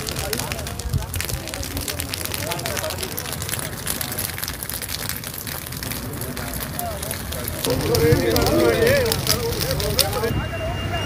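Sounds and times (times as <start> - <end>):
burning stubble crackling: 0.0 - 11.0.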